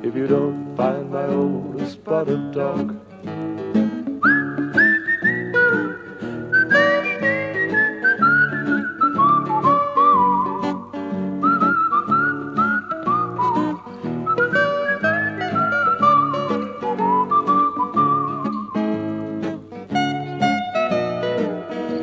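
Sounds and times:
strummed acoustic guitar: 0.0 - 22.0
whistled melody: 4.0 - 22.0.

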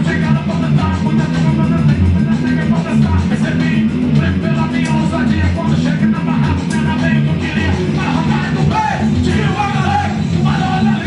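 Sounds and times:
bass guitar: 0.0 - 11.0
electric guitar: 0.0 - 11.0
person singing into a microphone: 0.0 - 11.0.

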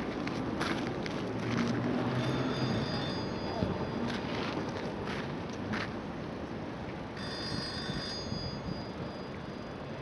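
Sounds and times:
outdoor background noise: 0.0 - 10.0
high-pitched ringing tones: 2.1 - 4.4, 7.2 - 10.0.

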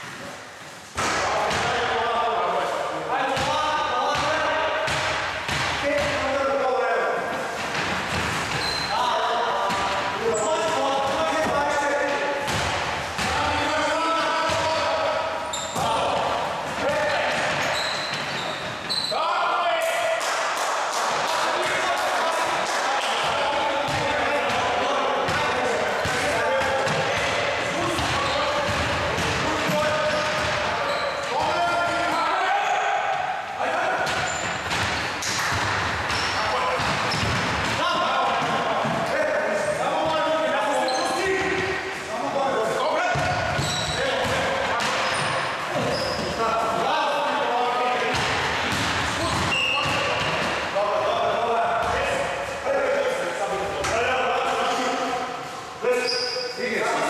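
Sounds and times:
basketball bouncing on wooden floor: 34.1 - 37.8.

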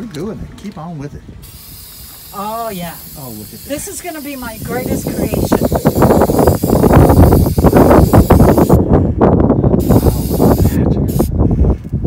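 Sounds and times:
spray-paint can hissing: 1.4 - 8.8, 9.8 - 11.3.

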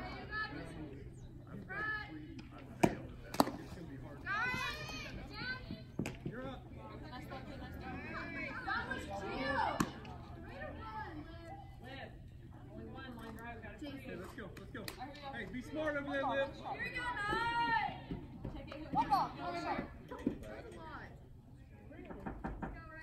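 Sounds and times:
girls calling and chattering: 0.0 - 13.0, 14.9 - 21.6.

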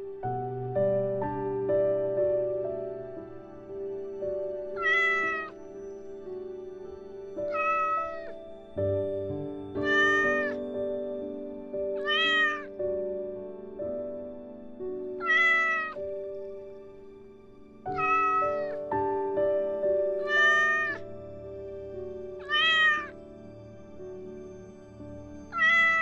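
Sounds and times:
soft background music: 0.0 - 26.0
kitten meowing: 4.8 - 5.5, 7.5 - 8.4, 9.8 - 10.6, 12.0 - 12.7, 15.2 - 16.0, 18.0 - 18.8, 20.2 - 21.0, 22.4 - 23.1, 25.6 - 26.0.

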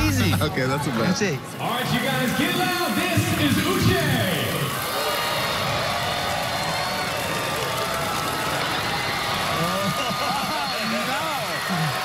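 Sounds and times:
large crowd cheering: 0.0 - 12.0.

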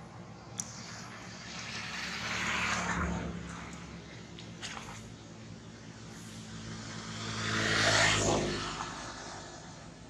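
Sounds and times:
motor vehicle driving past: 0.6 - 5.2, 5.8 - 10.0.

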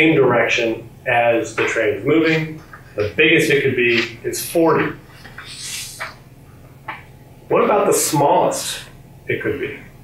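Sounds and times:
marker scratching on glass board: 4.8 - 6.2
marker squeaks: 5.1 - 6.2.

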